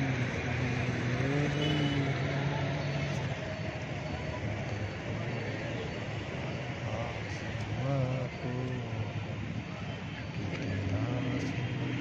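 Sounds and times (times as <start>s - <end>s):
faint voices: 0.0s - 12.0s.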